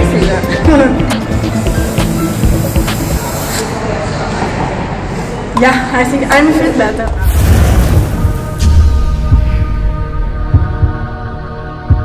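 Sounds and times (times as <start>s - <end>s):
background music: 0.0s - 4.1s, 5.8s - 12.0s.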